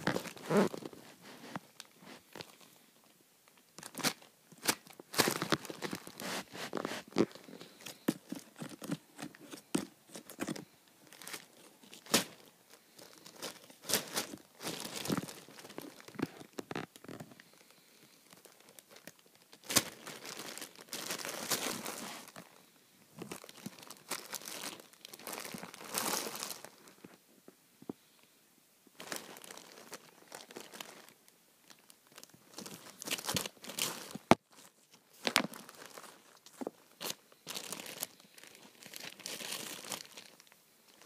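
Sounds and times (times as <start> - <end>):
plastic bag rustling: 0.0 - 2.7, 3.8 - 27.1, 29.0 - 41.0.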